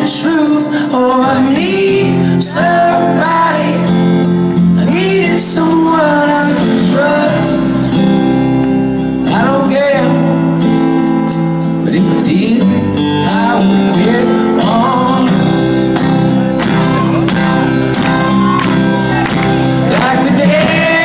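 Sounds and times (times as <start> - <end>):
person singing: 0.0 - 3.9, 4.8 - 8.2, 11.9 - 21.0
drums: 0.0 - 21.0
electric guitar: 0.0 - 21.0
strummed acoustic guitar: 0.0 - 21.0.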